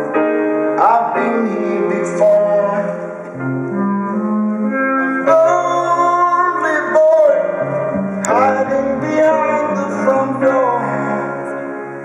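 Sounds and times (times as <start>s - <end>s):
keyboard chords: 0.0s - 12.0s
live band with singing: 0.0s - 12.0s
bass line: 3.4s - 11.5s.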